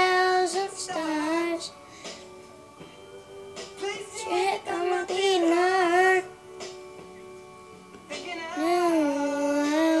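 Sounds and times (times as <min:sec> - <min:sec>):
faint backing track: 0:00.0 - 0:10.0.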